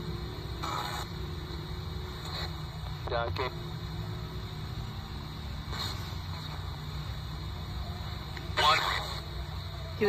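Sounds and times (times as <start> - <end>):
radio static hiss: 0.0 - 10.0
broadcast voice fragment: 8.6 - 9.2.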